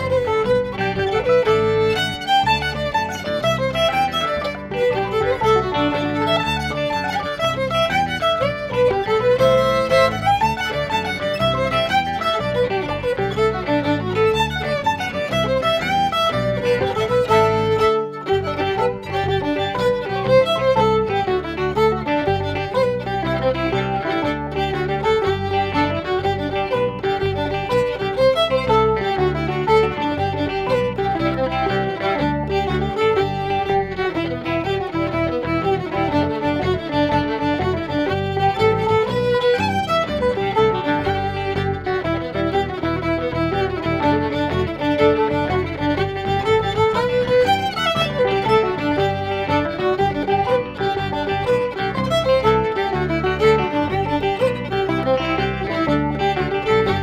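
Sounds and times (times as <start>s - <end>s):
fiddle playing a lively jig: 0.0s - 57.0s.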